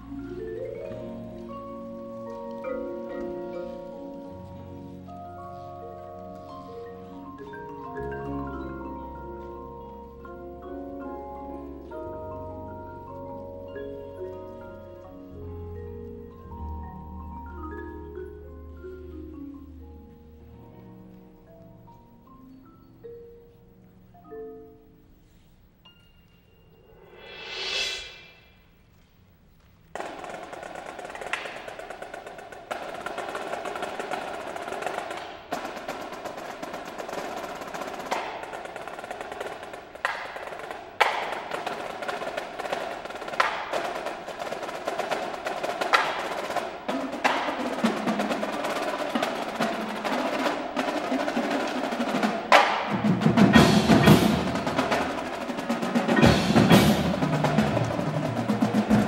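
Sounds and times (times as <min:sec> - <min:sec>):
marimbas playing: 0:00.0 - 0:25.2, 0:31.6 - 0:59.0
marching drums playing: 0:30.0 - 0:59.0.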